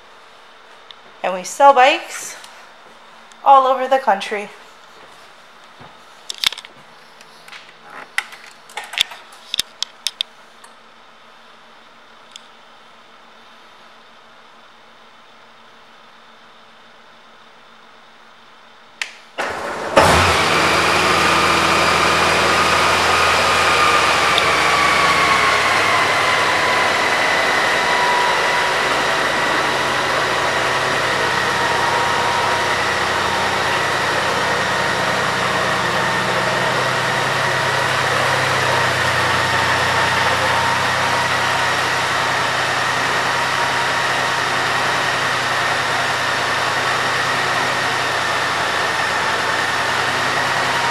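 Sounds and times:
motorcycle engine starting: 19.4s - 50.9s.

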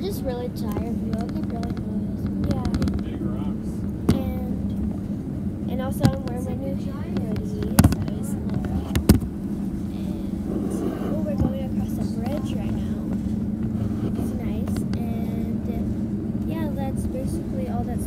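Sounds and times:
road noise inside cabin: 0.0s - 18.0s
vehicle engine drone: 0.0s - 18.0s.

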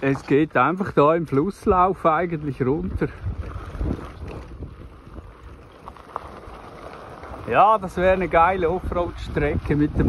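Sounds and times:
bicycle tyres on gravel: 0.0s - 10.0s
wind buffeting microphone: 0.0s - 10.0s.

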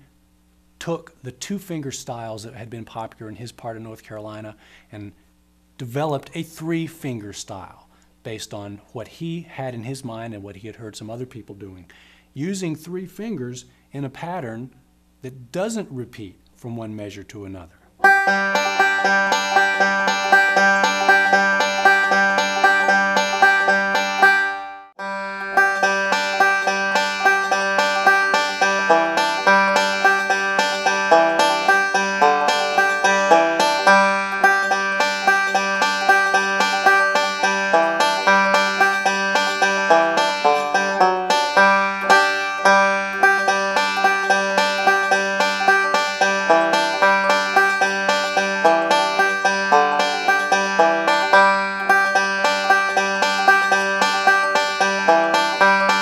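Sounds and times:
banjo picking fast rolls: 18.0s - 56.0s.

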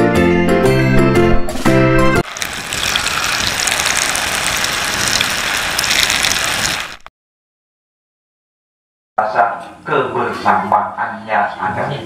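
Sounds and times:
water splashing and churning: 2.2s - 7.1s.

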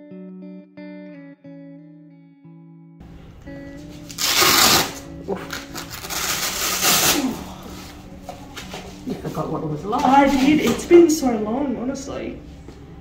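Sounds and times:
soft background music: 3.0s - 13.0s
rustling handling noise: 3.8s - 10.9s.

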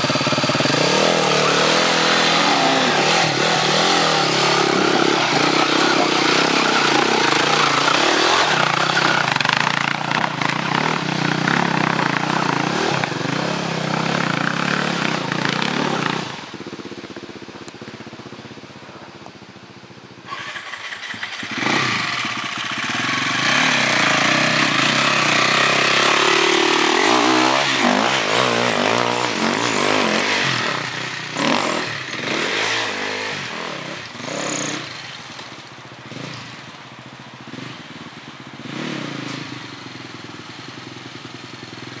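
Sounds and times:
dirt bike engines revving: 0.0s - 17.1s, 20.2s - 42.0s.

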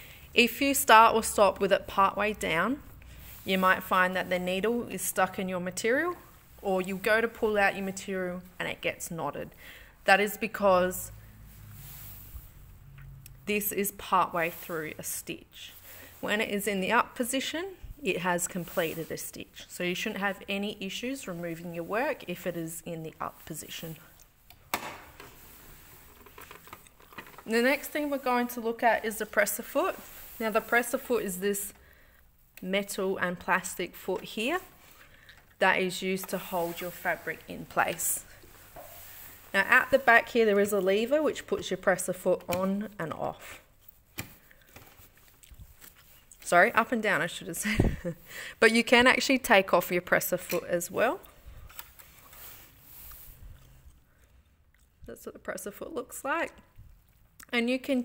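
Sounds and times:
plastic cover snapping shut: 24.7s - 25.2s.

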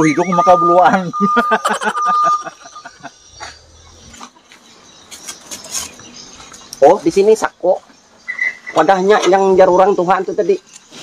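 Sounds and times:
high electronic beeps: 0.0s - 4.1s
man laughing: 0.9s - 3.6s.

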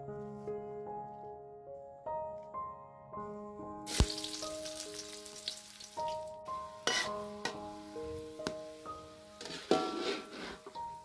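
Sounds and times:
piano background music: 0.0s - 11.0s
oil sizzling in a wok: 3.9s - 11.0s
metal spatula knocking wok: 6.8s - 7.7s.

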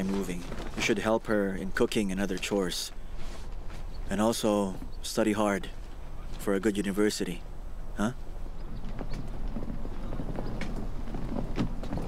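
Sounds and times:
wheeled suitcase rolling: 0.0s - 2.5s, 8.6s - 12.0s
footsteps on stone paving: 0.0s - 4.9s, 8.8s - 12.0s.

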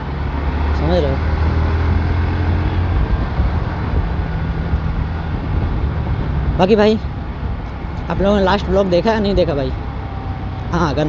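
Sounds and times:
road and wind noise: 0.0s - 11.0s.

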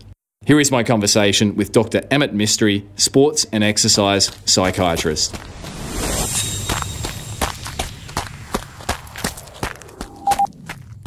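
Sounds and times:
brief rushing sweep: 5.2s - 10.6s.

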